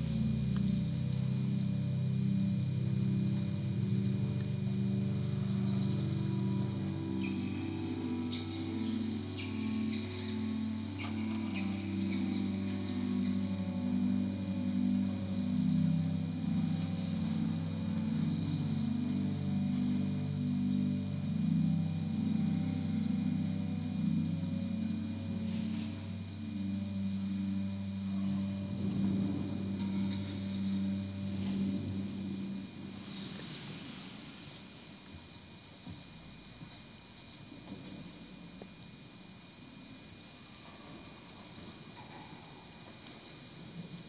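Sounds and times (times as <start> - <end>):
church organ chords: 0.0 - 33.8.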